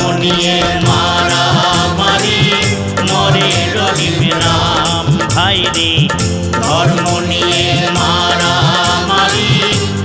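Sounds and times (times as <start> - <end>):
bass accompaniment: 0.0 - 10.0
percussion beat: 0.0 - 10.0
person singing: 0.0 - 10.0.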